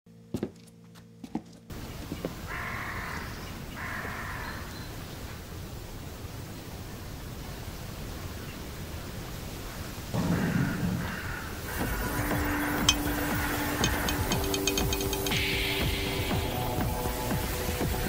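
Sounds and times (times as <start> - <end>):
crow cawing: 2.4 - 4.9, 10.2 - 16.6.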